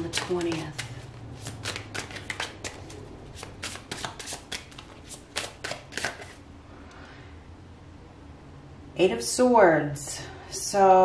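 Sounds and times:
tarot cards being shuffled: 0:00.0 - 0:06.4.

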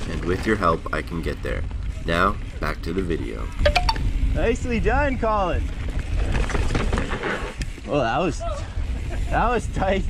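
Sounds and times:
bike clicks and rattles: 0:00.0 - 0:10.0
wind and tyre rumble: 0:00.0 - 0:10.0.

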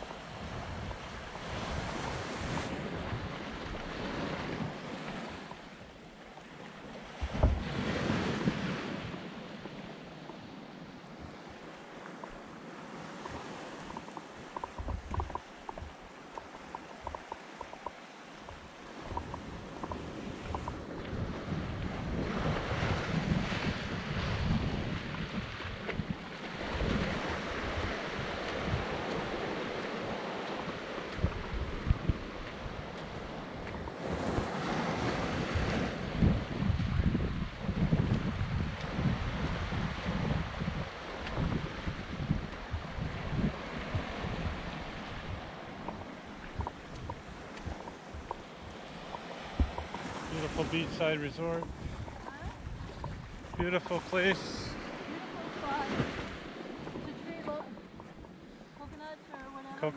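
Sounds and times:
wind buffeting microphone: 0:00.0 - 0:05.5, 0:11.1 - 0:59.2
small waves washing on beach: 0:00.0 - 0:59.9.

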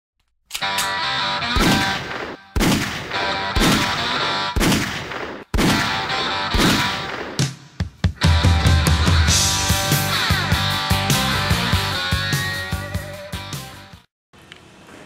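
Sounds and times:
background music: 0:00.6 - 0:04.6, 0:05.7 - 0:14.1
gunshots ringing out: 0:01.5 - 0:07.6.

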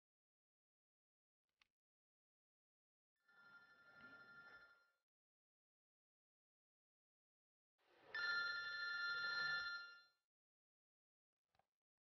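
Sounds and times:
mobile phone ringing: 0:08.2 - 0:10.2.

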